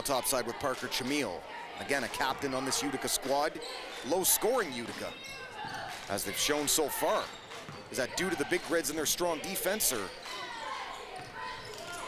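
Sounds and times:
crowd noise: 0.0s - 12.0s
basketball bouncing on wooden court: 7.3s - 7.9s, 10.2s - 12.0s.

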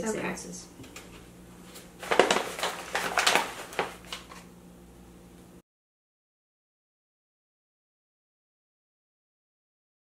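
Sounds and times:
plastic bag rustling: 1.6s - 4.5s.

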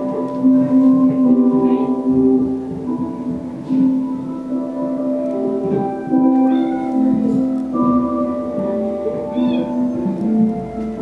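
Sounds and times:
music of held tones: 0.0s - 11.0s.

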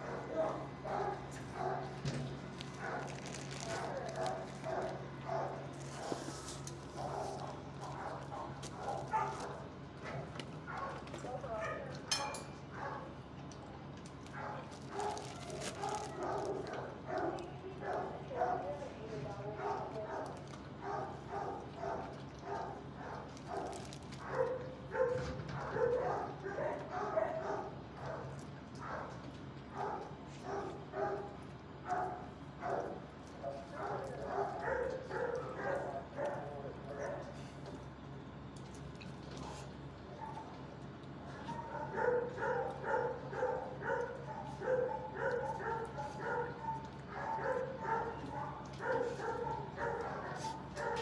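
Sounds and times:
dogs barking: 0.0s - 6.2s, 6.8s - 13.4s, 14.1s - 37.7s, 39.4s - 51.0s
steady low hum: 0.0s - 51.0s.

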